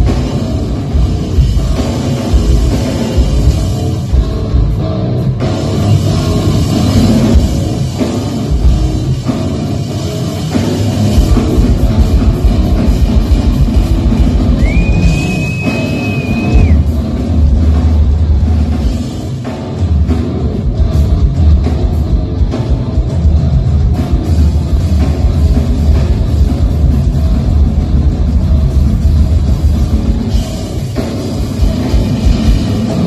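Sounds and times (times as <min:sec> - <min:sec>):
drum kit playing: 0:00.0 - 0:33.0
heavy low rumble: 0:16.5 - 0:33.0.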